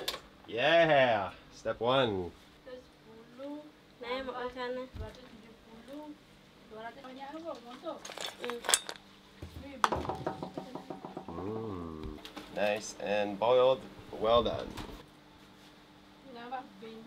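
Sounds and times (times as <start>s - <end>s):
shells clattering in metal strainer: 8.0s - 9.0s.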